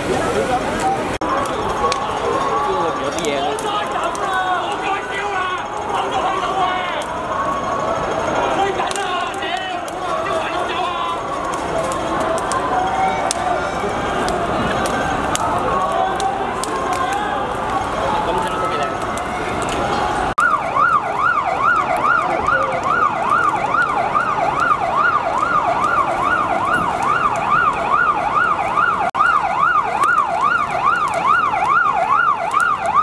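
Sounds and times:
fire engine siren yelping: 0:00.0 - 0:33.0
street noise: 0:00.0 - 0:33.0
voices: 0:00.0 - 0:33.0.

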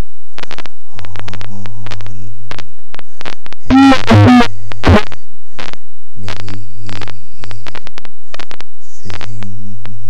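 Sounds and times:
crackling electrical hum: 0:00.0 - 0:10.0
distorted buzzing blurts: 0:00.0 - 0:10.0.

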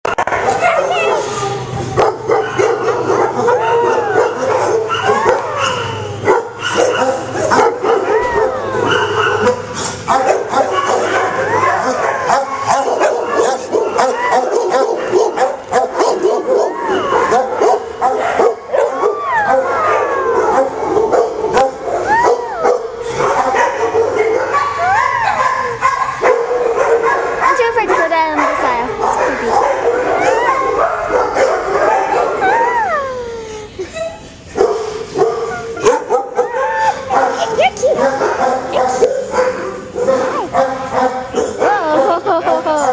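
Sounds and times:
dogs barking and yipping: 0:00.1 - 0:42.9
dogs whining and howling: 0:00.2 - 0:27.7, 0:28.5 - 0:42.9.

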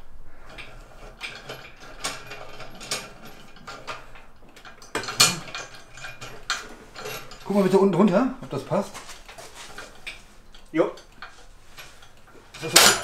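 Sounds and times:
metallic clicks and rattles: 0:00.5 - 0:13.0
loud metal clank: 0:12.6 - 0:13.0.

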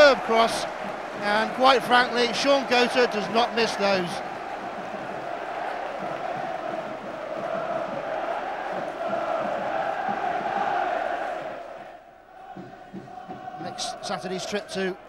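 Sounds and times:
football crowd chanting: 0:00.0 - 0:15.0.

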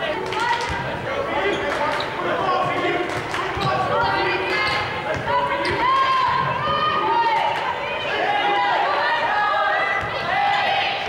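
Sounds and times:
players and spectators voices: 0:00.0 - 0:11.0.

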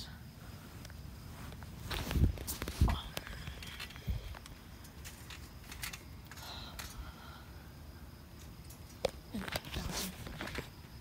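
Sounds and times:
blankets rustling: 0:00.4 - 0:04.8.

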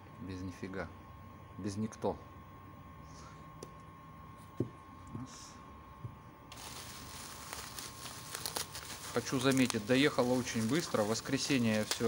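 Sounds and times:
plastic packaging crinkling: 0:06.5 - 0:12.0.

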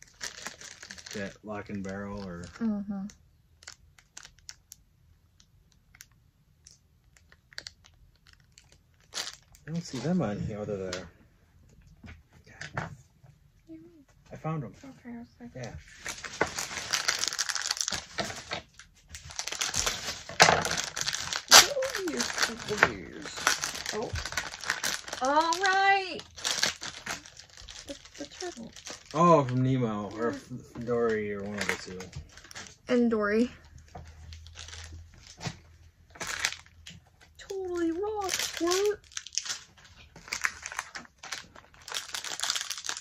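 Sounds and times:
plastic packaging crinkling: 0:00.0 - 0:11.0, 0:15.6 - 0:43.0.

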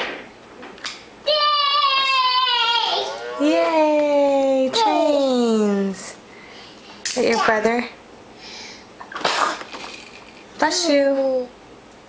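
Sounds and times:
baby sneezing: 0:09.1 - 0:09.7.

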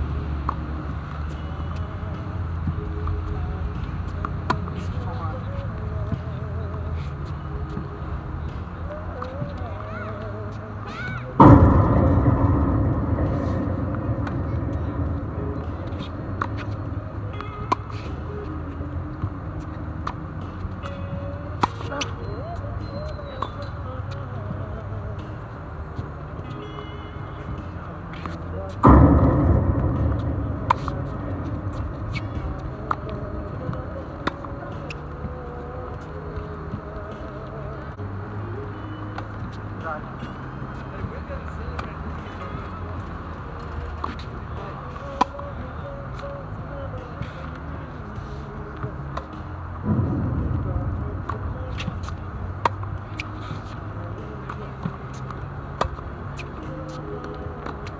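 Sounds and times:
song with singing: 0:00.7 - 0:26.8, 0:27.4 - 0:40.4, 0:42.3 - 0:57.9
loud rush: 0:11.4 - 0:18.7, 0:28.8 - 0:34.6, 0:49.8 - 0:53.2
low rumble: 0:11.4 - 0:19.7, 0:28.8 - 0:36.2, 0:49.8 - 0:54.2
tennis racket hitting ball: 0:13.2 - 0:19.2, 0:28.2 - 0:36.0, 0:49.9 - 0:57.9.

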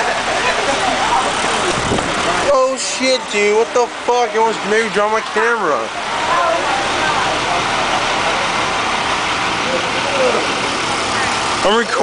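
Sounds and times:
diesel bus engines idling: 0:00.0 - 0:12.0
faint voices: 0:00.0 - 0:12.0.

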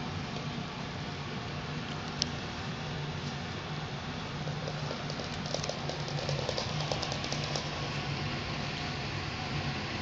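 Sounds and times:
steady low hum: 0:00.0 - 0:10.0
claws clicking on hardwood floor: 0:04.5 - 0:07.8.

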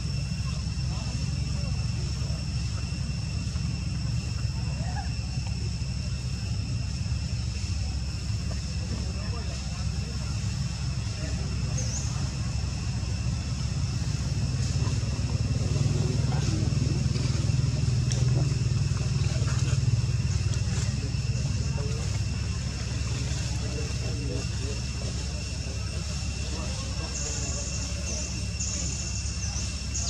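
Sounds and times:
faint indistinct voices: 0:00.0 - 0:30.0
steady low rumble: 0:00.0 - 0:30.0.

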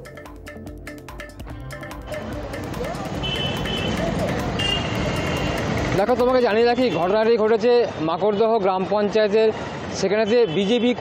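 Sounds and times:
traffic: 0:01.5 - 0:11.0
crowd noise: 0:01.9 - 0:10.4.

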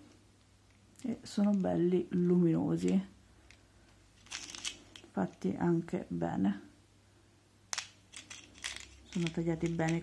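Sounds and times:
glass beads clicking and rattling: 0:04.2 - 0:05.2, 0:07.8 - 0:10.0.

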